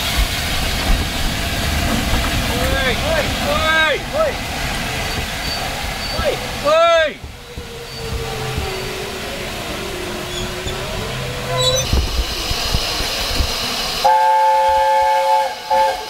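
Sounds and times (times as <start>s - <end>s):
steam hissing: 0.0s - 16.0s
train coaches rumbling: 0.0s - 16.0s
steam locomotive whistle: 14.0s - 16.0s.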